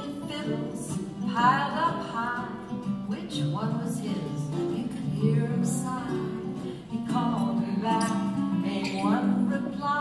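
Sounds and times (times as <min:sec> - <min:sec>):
baritone ukulele: 0:00.0 - 0:10.0.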